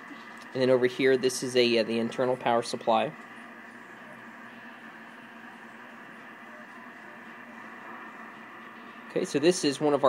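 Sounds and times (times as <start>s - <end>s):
low background hum and hiss: 0.0s - 10.0s.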